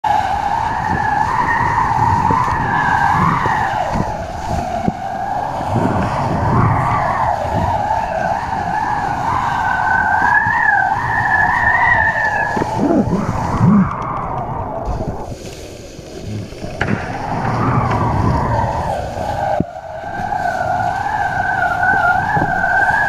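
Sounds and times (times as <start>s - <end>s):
wind rushing over camera: 0.0s - 23.0s
board slapping over water: 0.1s - 23.0s.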